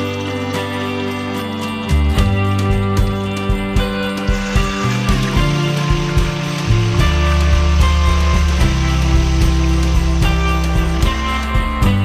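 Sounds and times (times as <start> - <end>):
music with held notes: 0.0 - 12.0
oil sizzling in a wok: 0.0 - 12.0.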